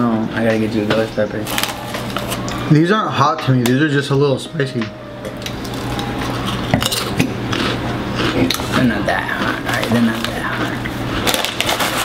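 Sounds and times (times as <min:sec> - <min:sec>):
low steady hum: 0:00.0 - 0:12.0
chewing crunchy chips: 0:05.3 - 0:12.0
plastic bag crinkling: 0:11.1 - 0:12.0.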